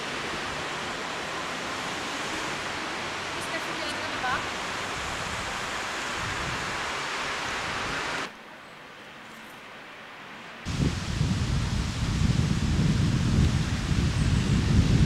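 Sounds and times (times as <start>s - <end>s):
rushing outdoor noise: 0.0s - 15.0s.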